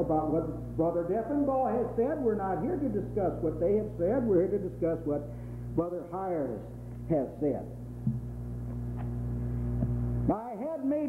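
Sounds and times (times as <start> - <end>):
man speaking into a microphone: 0.0 - 7.8, 10.3 - 11.0
electrical mains hum: 0.0 - 11.0.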